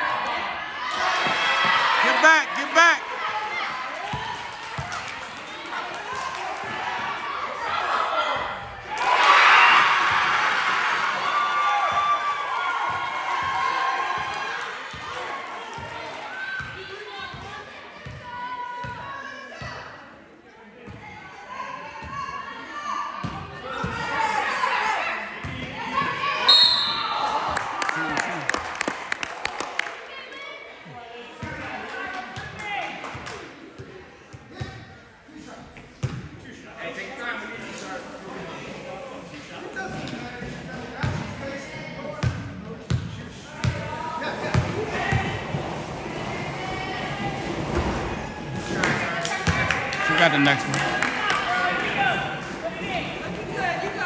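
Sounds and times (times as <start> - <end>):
players and spectators shouting: 0.0 - 4.4, 43.4 - 54.0
referee's whistle blast: 26.4 - 27.2.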